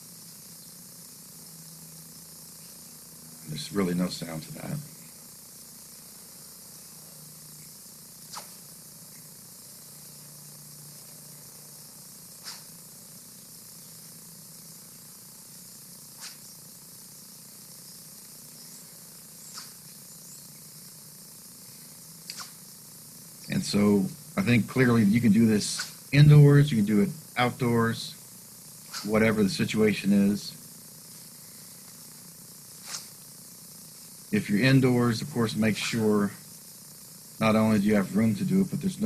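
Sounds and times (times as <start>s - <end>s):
steady hiss: 0.0s - 39.0s
faint sword swishes: 32.8s - 33.1s.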